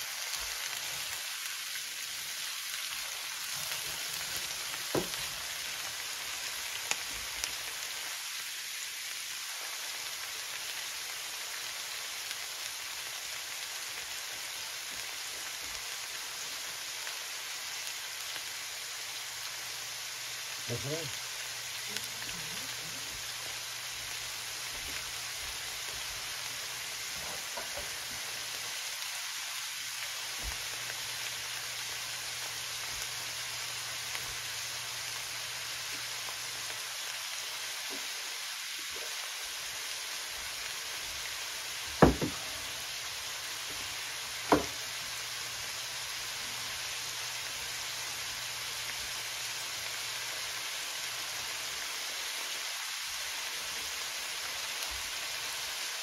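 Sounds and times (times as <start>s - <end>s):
vegetables sizzling in a skillet: 0.0s - 56.0s.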